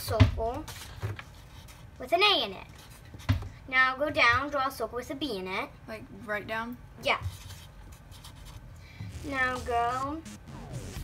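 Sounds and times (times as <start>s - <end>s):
marker scratching on paper: 7.2s - 8.6s.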